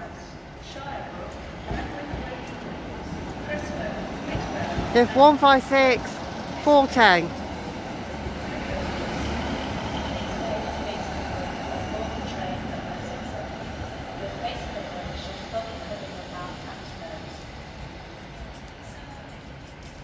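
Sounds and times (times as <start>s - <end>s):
train diesel engine rumble: 0.0s - 20.0s.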